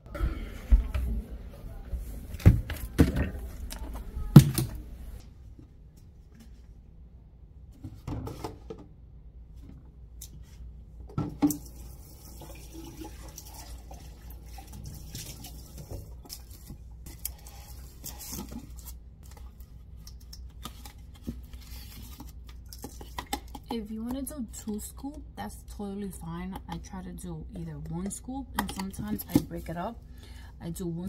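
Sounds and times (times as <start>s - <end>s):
tap water running: 11.3s - 18.4s.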